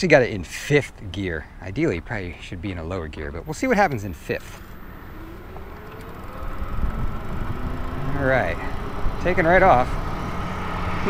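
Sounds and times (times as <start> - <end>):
electric bike motor whine: 4.6 - 11.0
wind rumble on microphone: 5.0 - 11.0.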